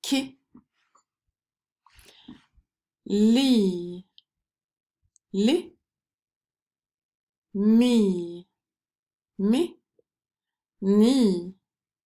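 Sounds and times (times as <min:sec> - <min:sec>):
woman saying a syllable: 0:00.0 - 0:00.4, 0:03.1 - 0:04.1, 0:05.4 - 0:05.8, 0:07.6 - 0:08.5, 0:09.4 - 0:09.8, 0:10.8 - 0:11.6.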